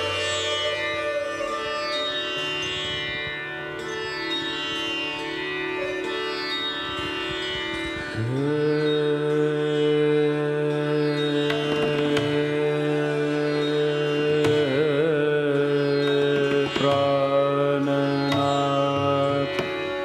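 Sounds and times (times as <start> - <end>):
bowed string instruments melody: 0.0 - 20.0
tanpura drone: 0.0 - 20.0.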